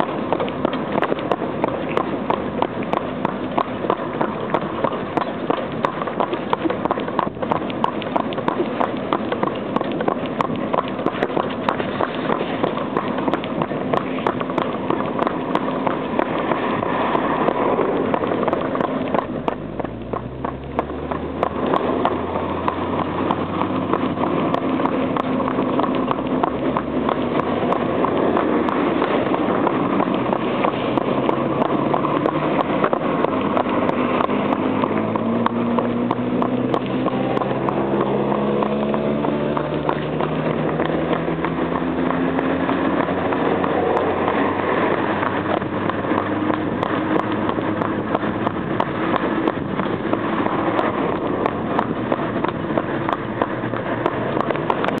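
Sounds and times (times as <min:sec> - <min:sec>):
hooves clip-clopping on asphalt: 0:00.0 - 0:55.0
rising hum: 0:12.7 - 0:55.0.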